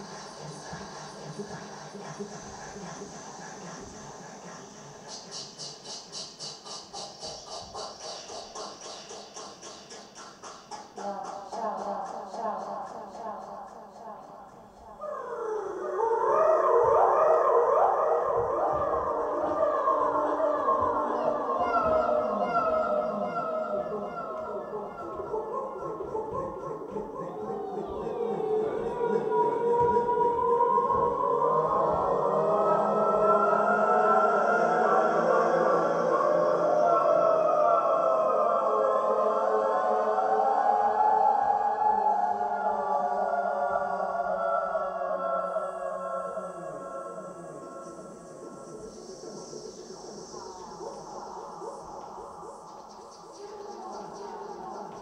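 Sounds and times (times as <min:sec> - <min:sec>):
wavering gliding electronic tones: 0:45.1 - 0:55.0.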